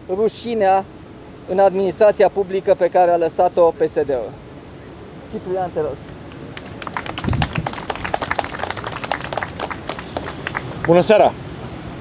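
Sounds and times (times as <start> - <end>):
small crowd applauding: 6.0 - 11.2.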